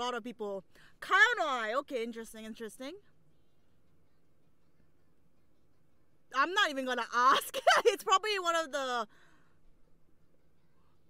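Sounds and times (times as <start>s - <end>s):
faint breath out: 9.1s - 9.7s.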